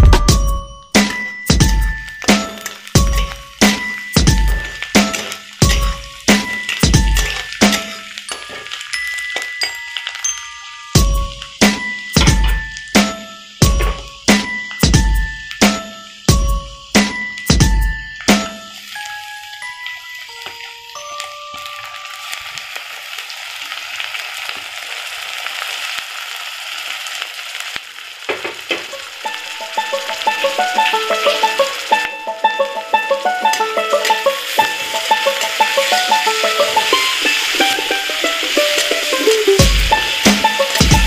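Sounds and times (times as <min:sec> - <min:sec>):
light plucked instrumental music: 0:00.0 - 0:22.6, 0:28.8 - 0:41.0
food sizzling in hot oil: 0:00.3 - 0:41.0.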